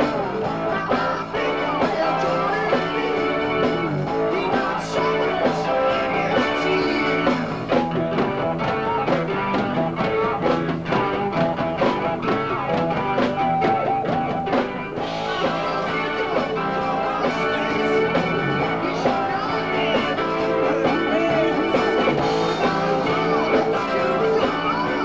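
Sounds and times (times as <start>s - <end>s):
electric guitar: 0.0s - 25.0s
live rock band playing: 0.0s - 25.0s.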